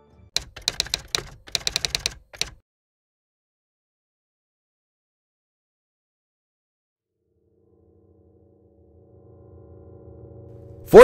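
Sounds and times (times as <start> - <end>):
keyboard typing clicks: 0.4 - 2.6.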